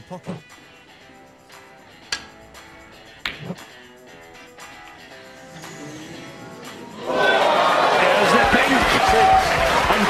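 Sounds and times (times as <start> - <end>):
background music: 0.0 - 10.0
snooker balls clicking: 3.2 - 3.6.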